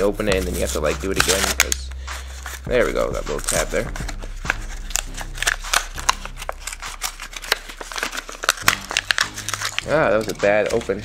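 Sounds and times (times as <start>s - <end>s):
plastic blister pack crackling: 0.0s - 11.0s.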